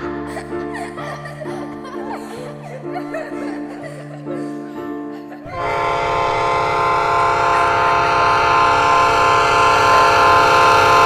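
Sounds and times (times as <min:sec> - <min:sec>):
train whistle blast: 0:05.5 - 0:11.0.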